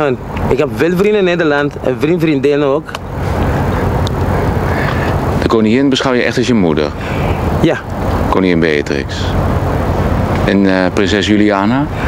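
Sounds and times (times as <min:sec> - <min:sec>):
speech: 0:00.0 - 0:03.0, 0:05.4 - 0:07.0, 0:07.6 - 0:09.4, 0:10.4 - 0:12.0
low hum: 0:00.0 - 0:12.0
steady rushing noise: 0:00.0 - 0:12.0.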